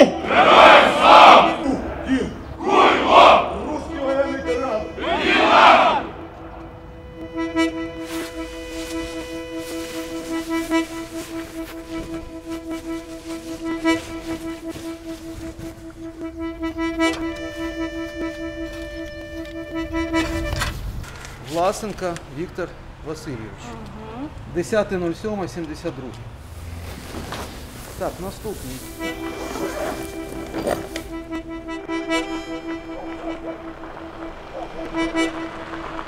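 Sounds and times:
soldiers shouting a chant: 0.0 - 4.4, 5.0 - 6.2
held musical drone: 0.0 - 21.4, 27.6 - 36.0.

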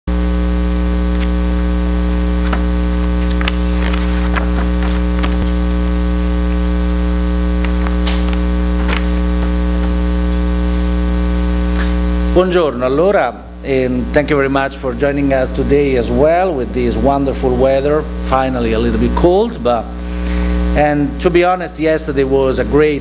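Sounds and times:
electrical mains hum: 0.1 - 23.0
papers rustling: 2.3 - 6.7, 7.5 - 10.4.

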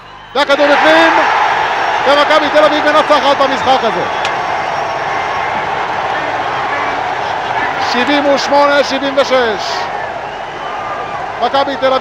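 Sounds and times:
crowd cheering: 0.0 - 12.0.

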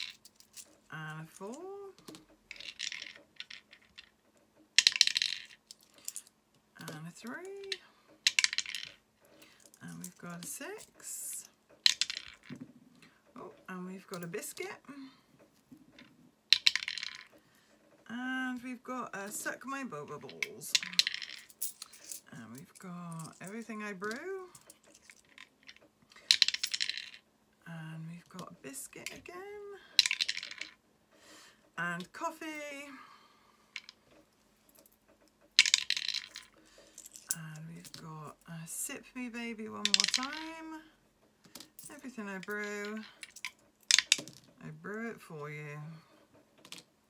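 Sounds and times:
metal coins clinking: 0.0 - 4.1, 4.8 - 12.5, 20.2 - 27.2, 30.0 - 30.8, 35.6 - 38.4, 39.8 - 40.5, 41.5 - 44.4.

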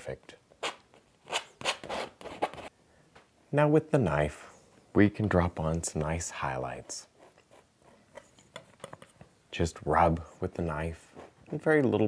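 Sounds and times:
palette knife scraping canvas: 0.6 - 2.7.

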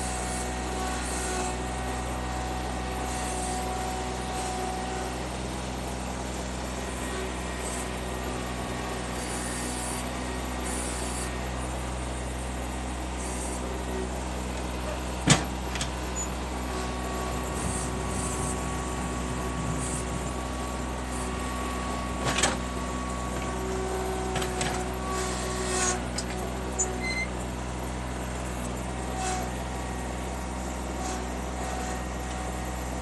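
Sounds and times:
diesel engine running under load: 0.0 - 33.0
thin steady whine: 16.0 - 27.3.

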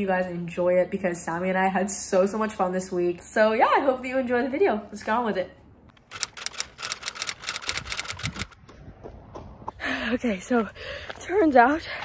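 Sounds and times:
rapid sharp clicks: 6.0 - 8.6.

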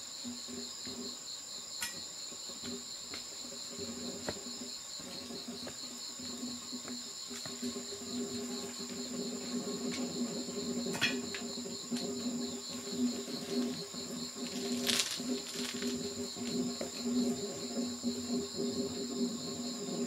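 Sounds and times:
high-pitched insect trill: 0.0 - 20.0
low insect drone: 0.0 - 20.0
rapidly pulsing insect trill: 0.0 - 20.0
rustling in dry leaves: 14.4 - 16.2.

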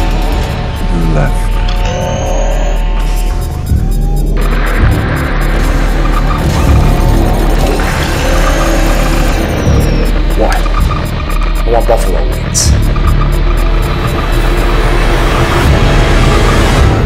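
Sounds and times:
deep steady drone: 0.0 - 17.0
trailer music: 0.0 - 17.0.

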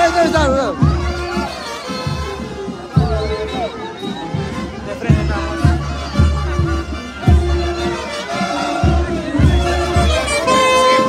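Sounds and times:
crowd voices: 0.0 - 11.0
drum beat: 0.0 - 11.0
high instruments melody: 0.0 - 11.0.

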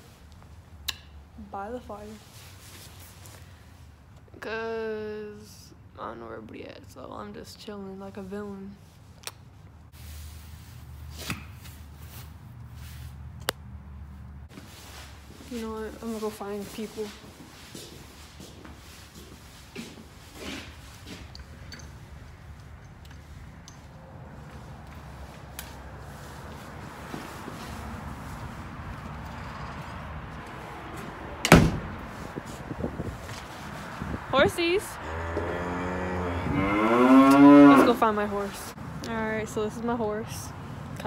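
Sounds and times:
door banging shut: 31.4 - 31.9.

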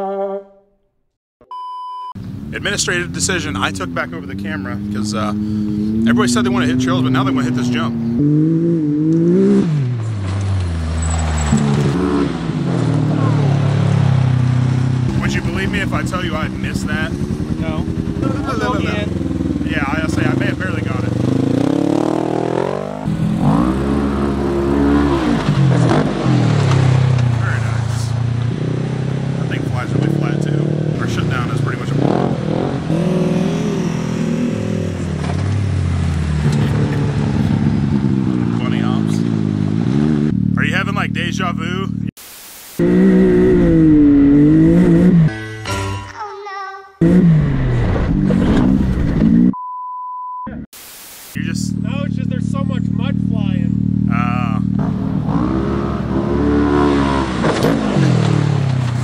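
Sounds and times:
off-road vehicle engine revving: 2.2 - 42.2, 42.8 - 45.4, 47.0 - 49.6, 51.4 - 59.0.

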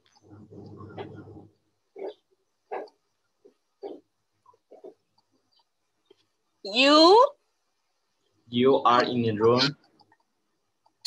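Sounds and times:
distorted voice over video call: 8.5 - 10.0.

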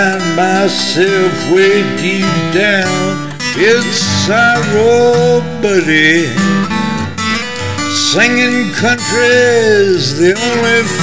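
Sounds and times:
person singing: 0.0 - 6.8, 7.5 - 11.0
acoustic guitar picking and strumming: 0.0 - 11.0.

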